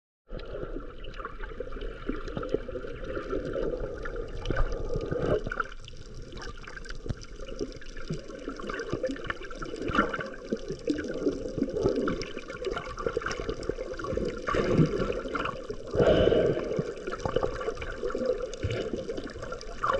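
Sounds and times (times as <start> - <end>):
small underwater clicks and pops: 0.3 - 15.9, 16.8 - 19.9
muffled underwater water wash: 0.3 - 19.9.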